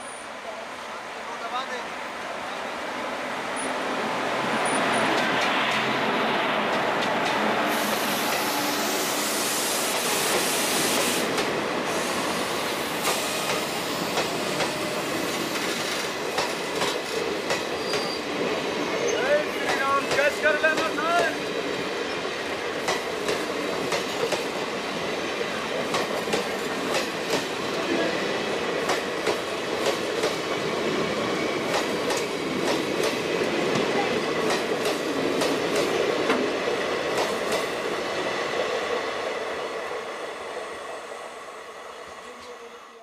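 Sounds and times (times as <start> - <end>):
passenger train rumbling past: 0.0 - 43.0.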